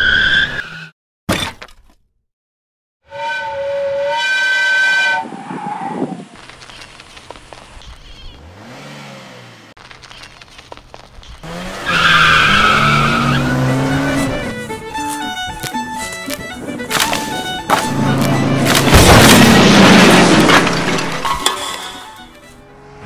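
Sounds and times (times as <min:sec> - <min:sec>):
tire squeal: 0:00.0 - 0:00.9, 0:03.1 - 0:06.2, 0:11.4 - 0:14.5
car engine passing: 0:08.3 - 0:09.7, 0:11.4 - 0:14.7, 0:17.4 - 0:21.4, 0:22.5 - 0:23.0.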